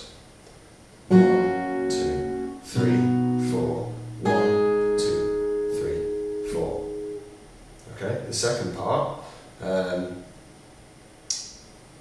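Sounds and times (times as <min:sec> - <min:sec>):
acoustic guitar chords ringing: 0:01.1 - 0:07.6.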